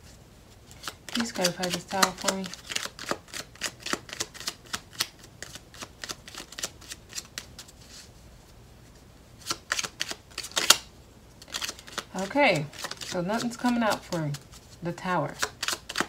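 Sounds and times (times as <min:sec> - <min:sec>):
cards being shuffled: 0:00.6 - 0:08.1, 0:09.4 - 0:16.0.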